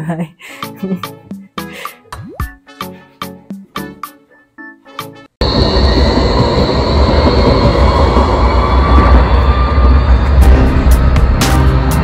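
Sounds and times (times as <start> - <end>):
wheels squealing on rails: 5.4 - 11.2
tram passing with rumble: 5.4 - 12.0.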